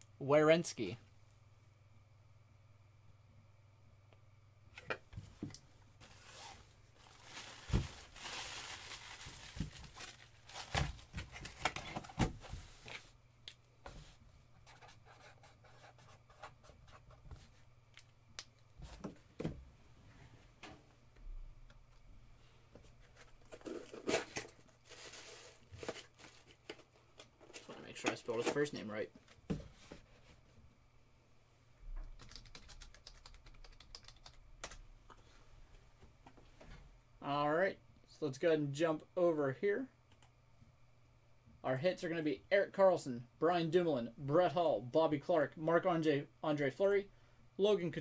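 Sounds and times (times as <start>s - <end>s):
low steady hum: 0.0s - 48.0s
packaging rustling and tearing: 6.0s - 12.2s, 23.5s - 26.8s.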